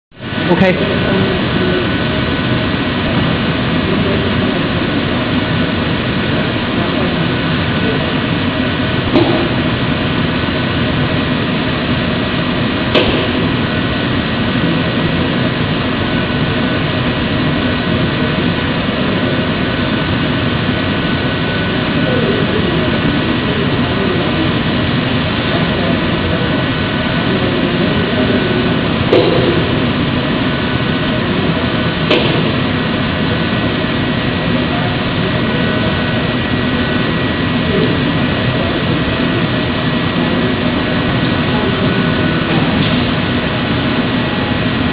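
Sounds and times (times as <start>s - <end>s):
workshop machinery drone and hiss: 0.2s - 44.9s.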